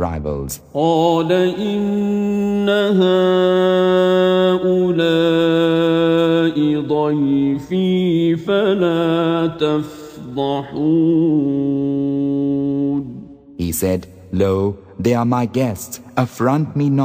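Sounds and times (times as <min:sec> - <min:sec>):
man chanting melodically: 0:00.0 - 0:17.0.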